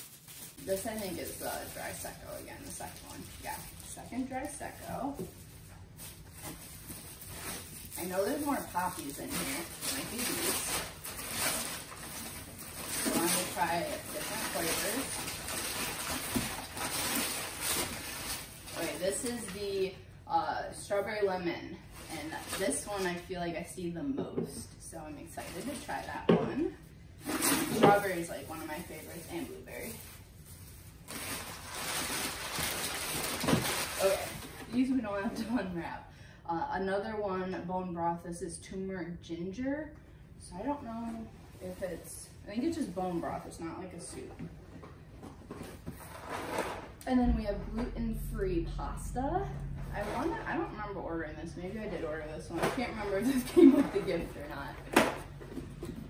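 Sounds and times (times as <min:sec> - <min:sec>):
paper packing wrap crinkling: 0:00.0 - 0:19.4, 0:27.2 - 0:34.8.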